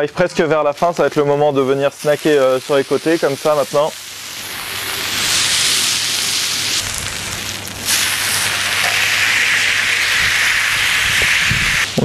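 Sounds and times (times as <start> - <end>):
beef sizzling on a hot plate: 0.7 - 12.0.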